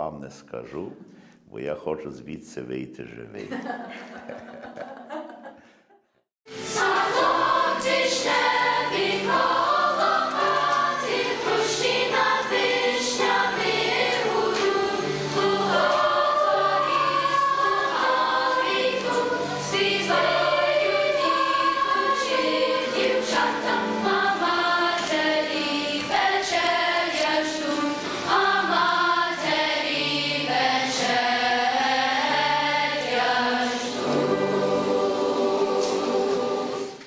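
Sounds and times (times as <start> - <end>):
choir singing: 6.5 - 37.0.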